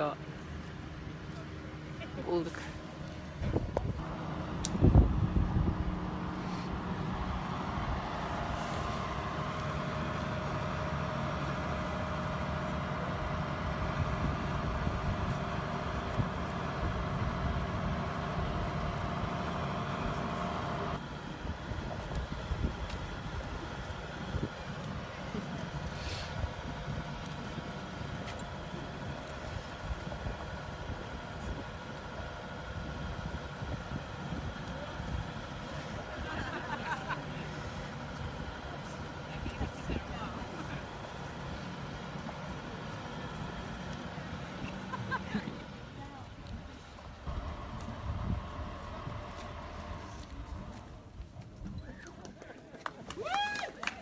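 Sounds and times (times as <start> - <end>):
engine and hydraulics running: 0.0 - 54.0.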